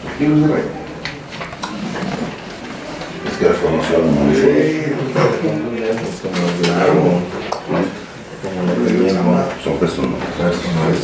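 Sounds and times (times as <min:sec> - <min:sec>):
men talking: 0:03.2 - 0:11.0.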